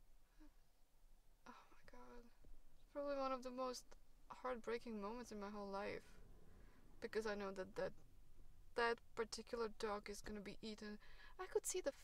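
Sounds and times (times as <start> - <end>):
woman's quiet breathy voice: 1.4 - 2.4.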